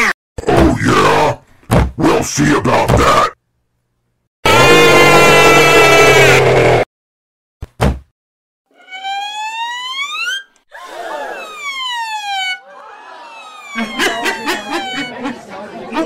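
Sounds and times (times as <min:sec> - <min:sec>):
siren wailing: 0:04.5 - 0:06.6, 0:08.7 - 0:15.3
crowd chatter: 0:12.6 - 0:16.0.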